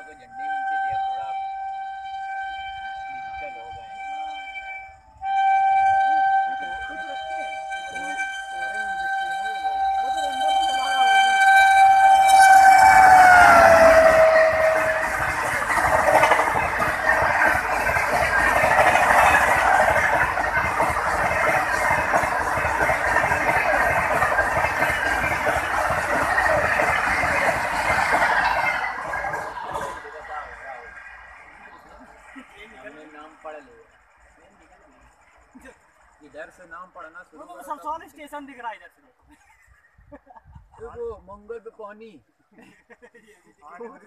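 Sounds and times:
train horn blast: 0.0 - 30.0
train coaches clattering past: 0.0 - 37.9.

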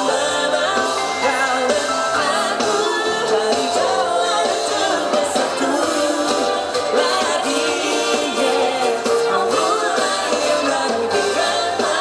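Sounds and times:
drum kit: 0.0 - 12.0
singers singing: 0.0 - 12.0.

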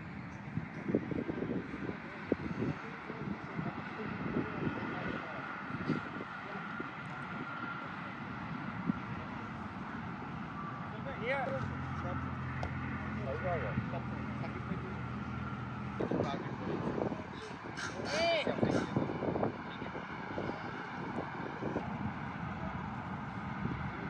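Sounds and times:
distant indistinct voices: 0.0 - 24.0
low engine hum: 0.0 - 24.0.

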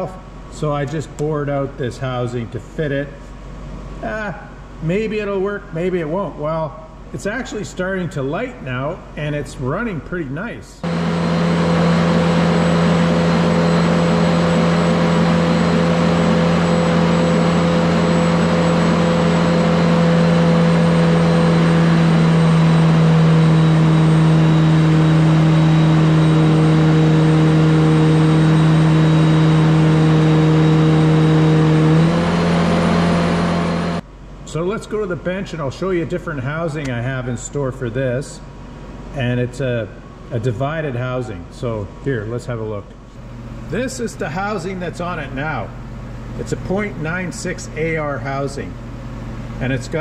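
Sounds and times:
diesel engine droning: 10.8 - 35.1.

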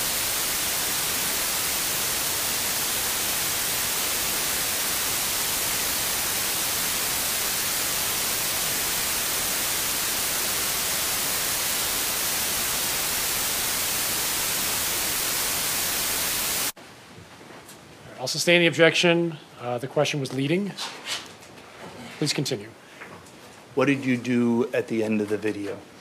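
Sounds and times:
white-noise static hiss: 0.0 - 20.8, 22.2 - 26.0.

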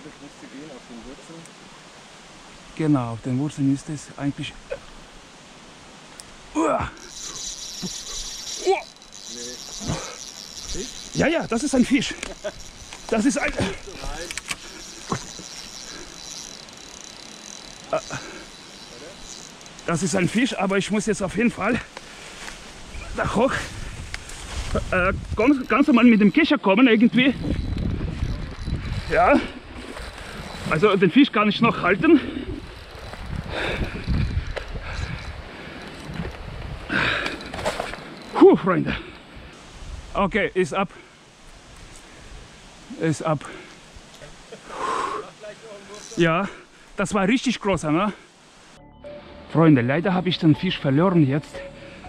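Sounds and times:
fishing reel whirring: 6.8 - 22.0, 25.0 - 38.4, 45.7 - 46.6
sharp ticks: 6.9 - 22.1, 25.0 - 31.0, 37.0 - 38.4
handling and rustling noise: 7.0 - 26.0, 32.6 - 38.4
wind rumbling on microphone: 22.4 - 26.4, 27.1 - 30.8, 31.7 - 38.3, 39.3 - 40.4.

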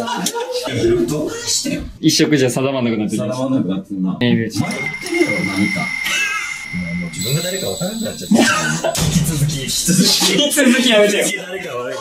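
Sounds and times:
men talking: 0.0 - 12.0
steady high tone: 4.6 - 11.1.

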